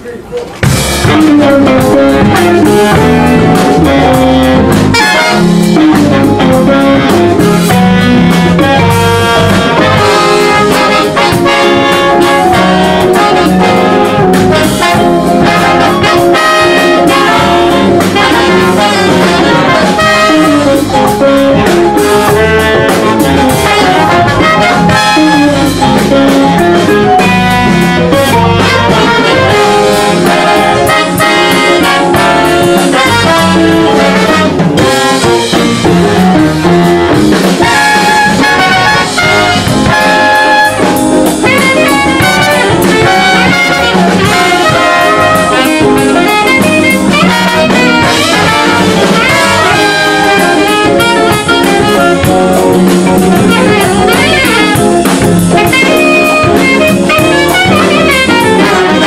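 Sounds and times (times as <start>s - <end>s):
live jazz band playing: 0.0s - 59.0s.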